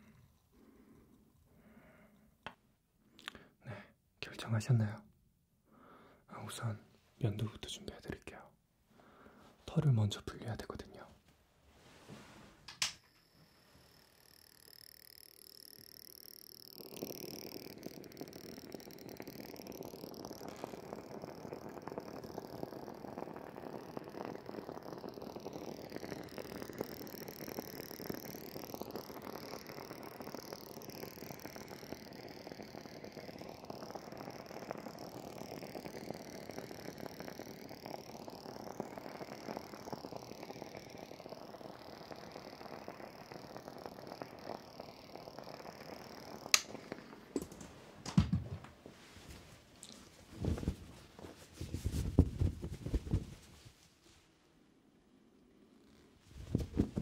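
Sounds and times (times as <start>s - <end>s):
facial steamer hissing: 12.7s - 47.9s.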